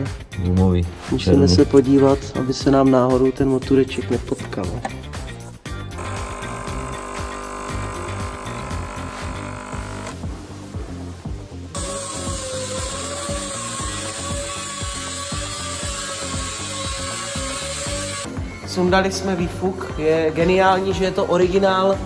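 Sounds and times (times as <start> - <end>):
background music with steady beat: 0.0 - 22.0
air cutting tool whining on metal: 5.9 - 10.2, 11.8 - 18.3
coffee machine pouring into mug: 6.0 - 10.2.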